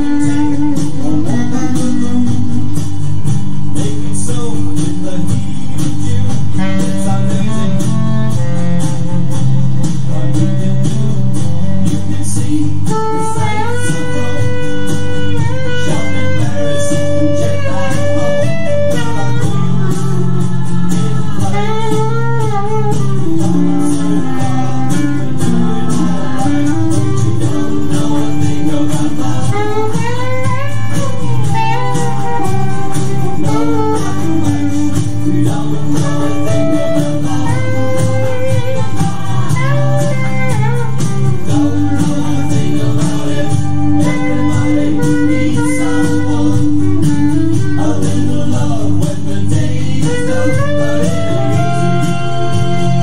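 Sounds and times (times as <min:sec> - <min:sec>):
backing track with steady beat: 0:00.0 - 0:53.0
clarinet melody: 0:00.0 - 0:53.0.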